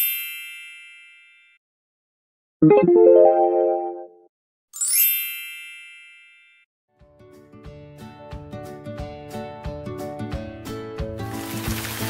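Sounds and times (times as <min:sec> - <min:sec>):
bell-like ding effect: 0:04.8 - 0:06.6.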